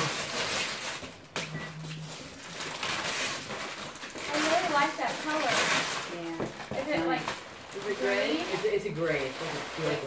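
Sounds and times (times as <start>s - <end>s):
wrapping paper rustling: 0.0s - 10.0s.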